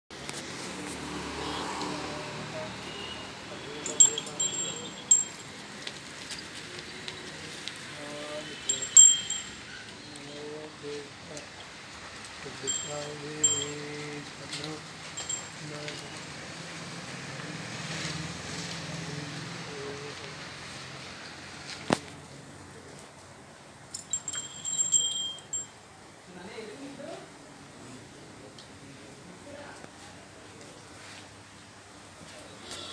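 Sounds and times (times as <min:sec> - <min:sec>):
faint background voices: 0:01.0 - 0:16.6, 0:26.0 - 0:32.9
high-pitched metallic ringing: 0:02.9 - 0:05.6, 0:08.6 - 0:09.9, 0:12.6 - 0:14.3, 0:15.2 - 0:15.8, 0:23.9 - 0:25.8
bright metallic clinks: 0:03.7 - 0:05.6, 0:08.6 - 0:09.8, 0:12.6 - 0:14.4, 0:15.1 - 0:16.2, 0:23.9 - 0:25.8.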